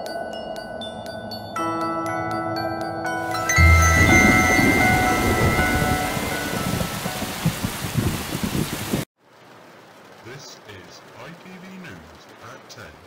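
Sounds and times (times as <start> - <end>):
glockenspiel tune: 0.0 - 7.7
steady rain: 3.3 - 13.0
rumbling thunder: 3.6 - 9.0
loud thunderclap: 3.6 - 9.1.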